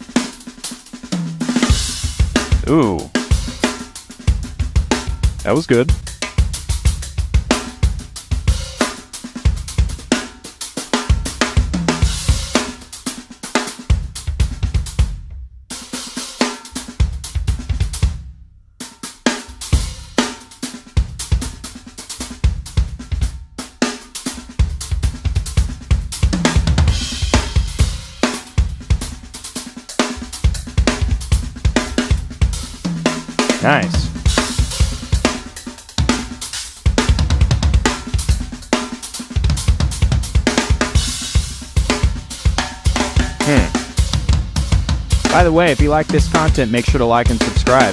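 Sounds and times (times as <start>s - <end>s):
drum kit solo: 0.0s - 15.1s, 15.7s - 18.2s, 19.0s - 47.9s.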